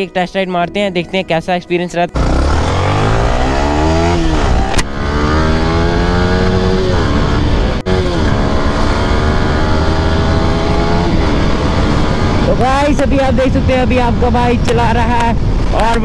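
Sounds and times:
motorcycle engine accelerating: 2.1 - 15.9.

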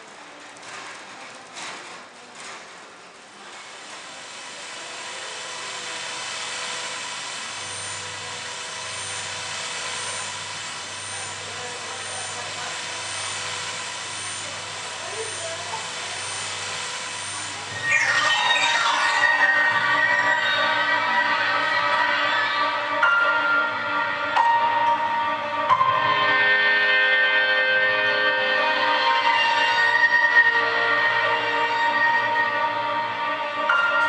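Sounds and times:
rush of noise: 15.8 - 23.9
loud music: 17.7 - 34.0.

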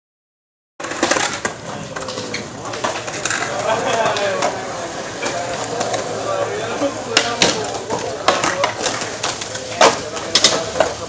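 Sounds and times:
skateboards rolling on concrete: 0.8 - 11.0.

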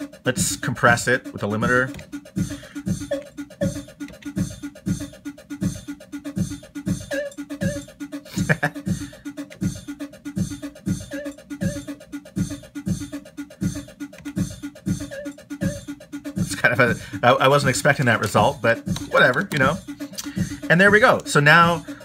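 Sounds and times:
beatboxed drum loop: 0.0 - 22.0.

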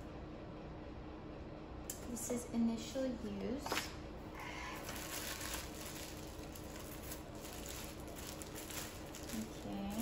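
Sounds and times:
packaging rustling and crinkling: 4.7 - 10.0.

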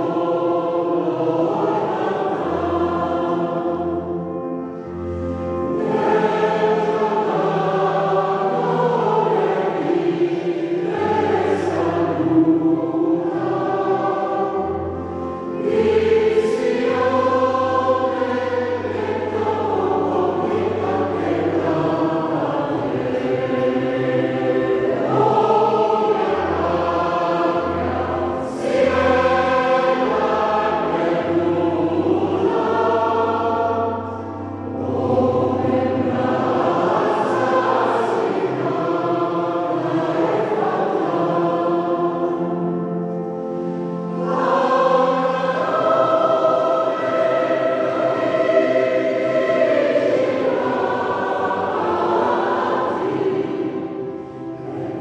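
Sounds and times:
mixed choir singing: 0.0 - 55.0.

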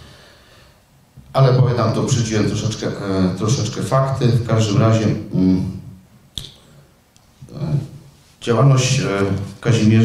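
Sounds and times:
sharp click: 6.4 - 6.6.

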